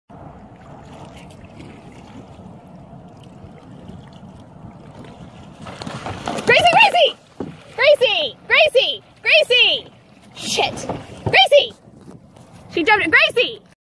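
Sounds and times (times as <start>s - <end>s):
water lapping at a hull: 0.1s - 13.7s
dog splashing into water: 5.1s - 7.8s.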